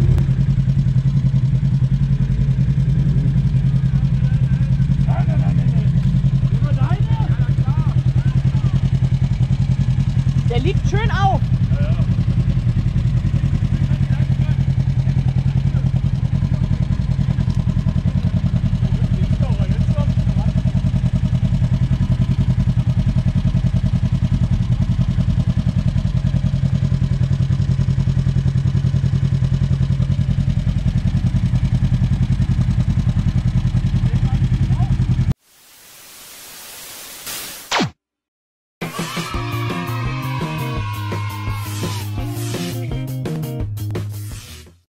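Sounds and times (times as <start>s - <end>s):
engine idling: 0.0s - 35.4s
static hiss: 35.4s - 37.8s.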